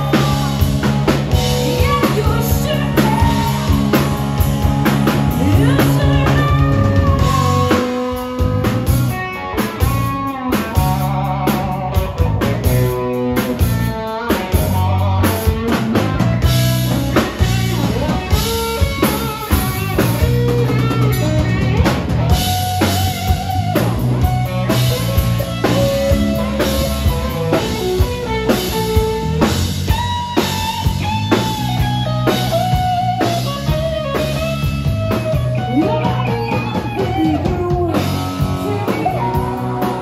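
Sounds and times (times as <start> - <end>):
bass guitar: 0.0 - 40.0
drum kit beat: 0.0 - 40.0
electric guitar lead: 0.0 - 40.0.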